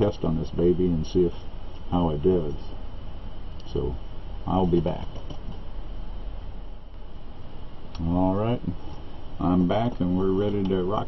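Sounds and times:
background hiss: 0.0s - 11.0s
low hum: 0.0s - 11.0s.

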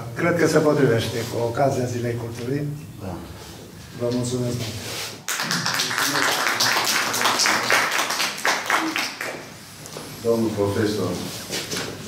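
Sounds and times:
audience applauding: 5.2s - 9.6s.

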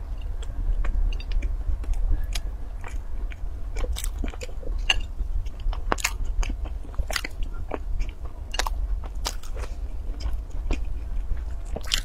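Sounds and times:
steady low hum: 0.0s - 12.0s
pastry crackling while chewed: 0.2s - 12.0s.

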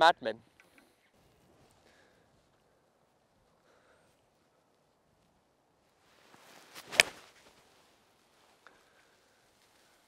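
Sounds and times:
golf club swish: 6.2s - 7.8s
club striking golf ball: 6.8s - 7.2s.

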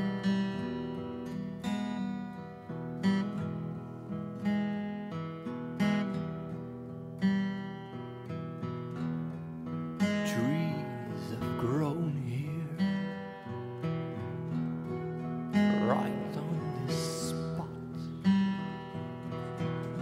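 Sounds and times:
acoustic guitar strumming chords: 0.0s - 20.0s.

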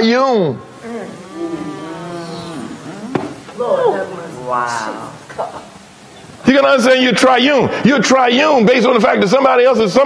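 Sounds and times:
person humming a low note: 0.8s - 3.2s.

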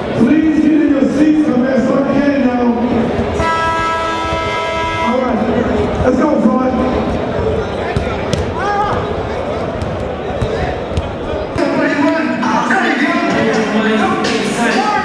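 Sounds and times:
crowd voices: 0.0s - 15.0s
basketballs bouncing on hardwood: 6.9s - 11.8s.

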